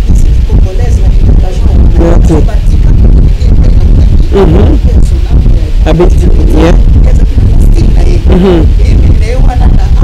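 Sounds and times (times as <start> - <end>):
loud low rumble: 0.0 - 10.0
woman speaking into a microphone: 0.0 - 10.0.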